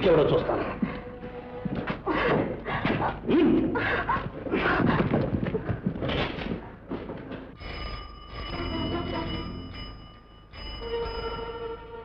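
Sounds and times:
telephone bell ringing: 7.6 - 12.0.

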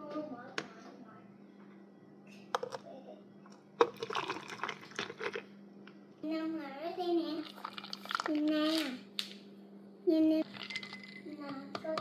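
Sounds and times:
drink pouring onto ice: 3.8 - 5.4, 10.5 - 11.3.

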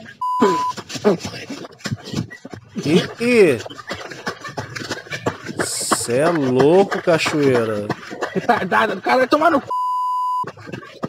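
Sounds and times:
censor bleep: 0.2 - 0.7, 9.7 - 10.4
person speaking: 2.8 - 3.7, 5.6 - 8.0.

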